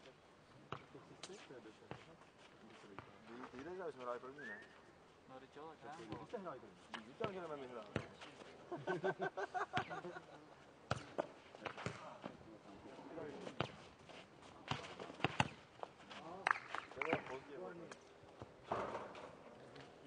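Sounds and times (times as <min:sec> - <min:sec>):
ball kicked and bouncing: 0:00.7 - 0:00.9, 0:06.9 - 0:08.3, 0:10.9 - 0:12.4, 0:14.6 - 0:15.9, 0:18.4 - 0:19.3.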